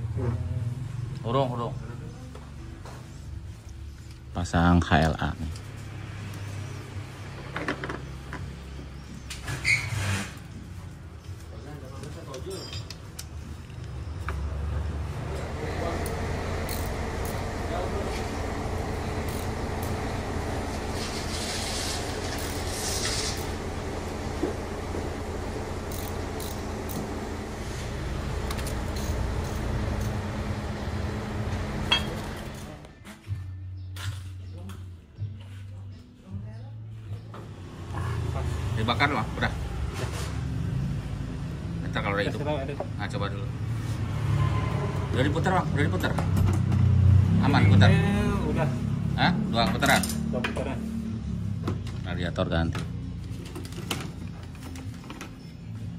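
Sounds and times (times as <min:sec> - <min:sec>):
steady background hum: 0:15.2 - 0:32.7
metal hand tools clicking on engine: 0:25.9 - 0:27.0.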